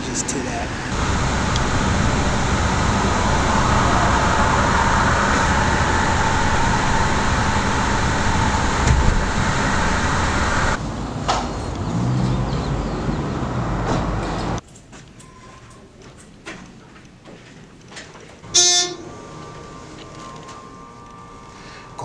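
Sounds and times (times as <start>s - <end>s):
car road and engine noise: 0.0s - 14.6s.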